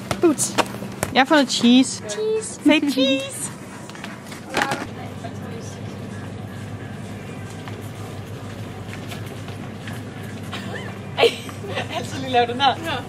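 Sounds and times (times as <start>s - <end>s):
steady low hum: 0.0s - 13.0s
faint music: 1.1s - 13.0s.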